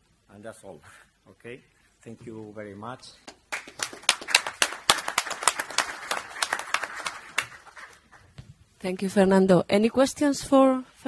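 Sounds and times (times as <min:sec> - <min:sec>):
audience applauding: 0:03.3 - 0:08.3.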